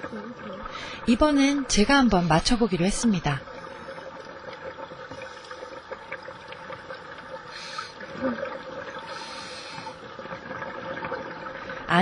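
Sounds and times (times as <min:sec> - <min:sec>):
exhaled bubbles: 0:00.0 - 0:12.0
low underwater hum: 0:00.0 - 0:12.0.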